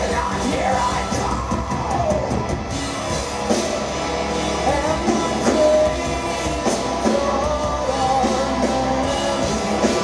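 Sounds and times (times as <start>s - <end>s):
man singing in yelled voice: 0.0s - 2.4s, 4.6s - 10.0s
heavy metal band playing: 0.0s - 10.0s.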